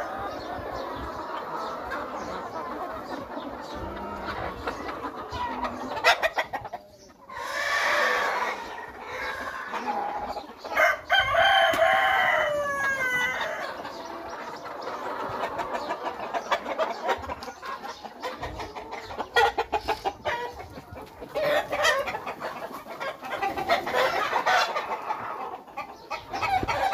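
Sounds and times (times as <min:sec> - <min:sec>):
chickens clucking and calling: 0:00.0 - 0:26.9.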